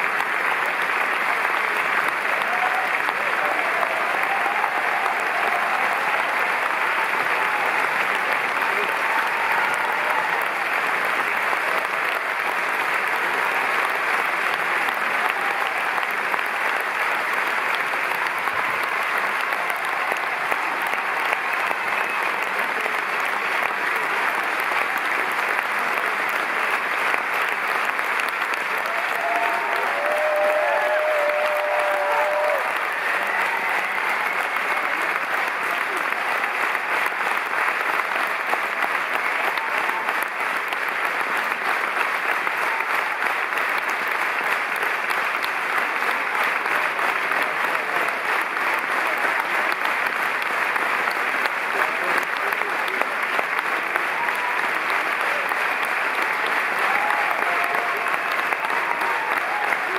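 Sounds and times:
audience applauding: 0:00.0 - 0:59.9
cheers: 0:00.0 - 0:59.9.

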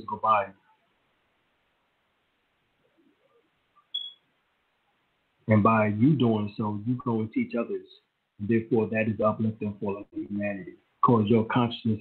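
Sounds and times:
short high-pitched blip: 0:03.9 - 0:04.2.

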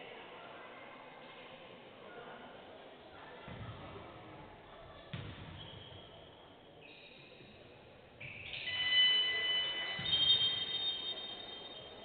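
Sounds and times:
high-pitched ringing tones: 0:08.3 - 0:12.0.

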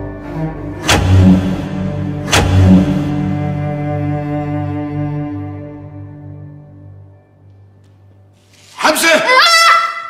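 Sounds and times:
low drone: 0:00.0 - 0:07.2
heavy booming hits: 0:00.8 - 0:03.6.

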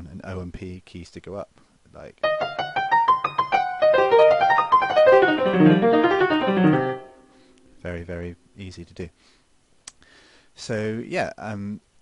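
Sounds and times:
piano blues-scale run: 0:02.2 - 0:07.2.

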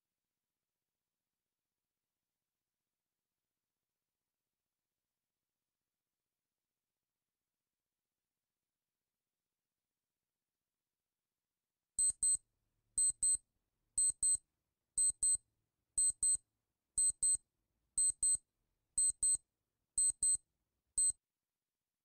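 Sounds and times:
high-pitched double beeps: 0:12.0 - 0:12.4, 0:13.0 - 0:13.4.

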